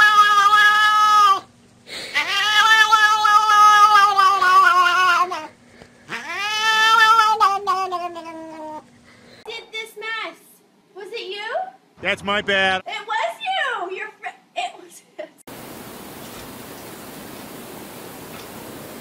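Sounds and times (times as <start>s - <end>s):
cat yowling: 0.0s - 1.5s, 2.1s - 5.5s, 6.1s - 8.8s.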